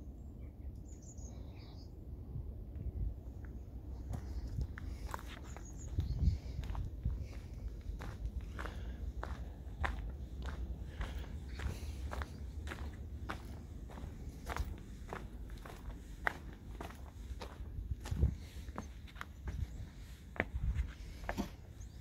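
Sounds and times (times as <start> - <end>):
footsteps on gravel: 4.0 - 21.6.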